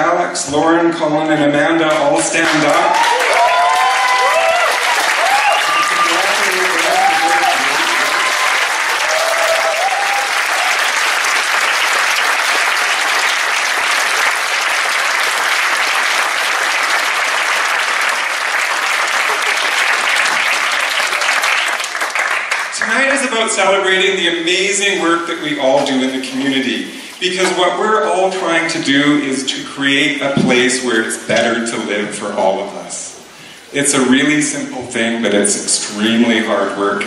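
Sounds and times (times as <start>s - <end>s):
audience applauding: 2.4s - 23.1s
people cheering and calling out: 2.7s - 10.9s.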